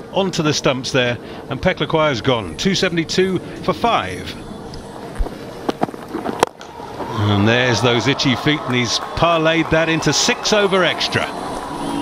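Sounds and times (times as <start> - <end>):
crowd background noise: 0.0 - 12.0.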